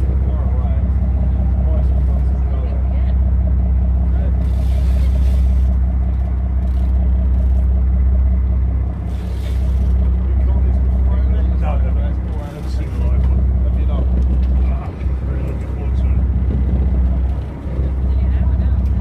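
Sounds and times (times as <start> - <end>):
boat engine humming: 0.0 - 19.0.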